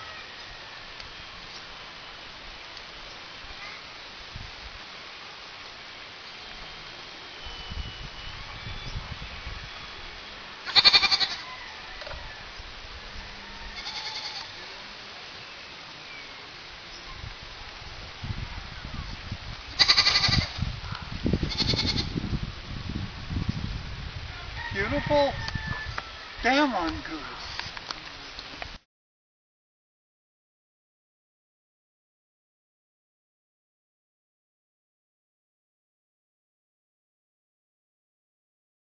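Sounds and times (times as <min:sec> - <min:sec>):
background hiss: 0:00.0 - 0:28.8
short animal calls: 0:10.6 - 0:11.5.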